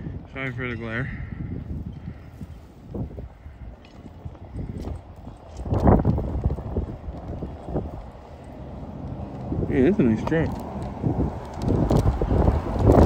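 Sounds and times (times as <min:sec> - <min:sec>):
wind buffeting microphone: 0:00.0 - 0:13.0
pickup truck approaching: 0:04.1 - 0:13.0.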